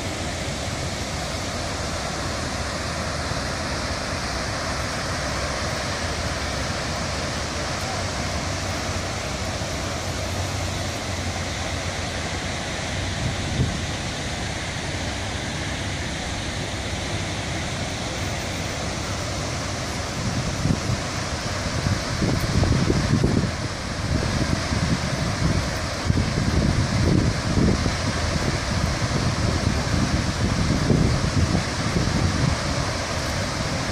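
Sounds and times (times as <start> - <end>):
rush of falling water: 0.0 - 33.9
wind buffeting microphone: 20.0 - 33.9.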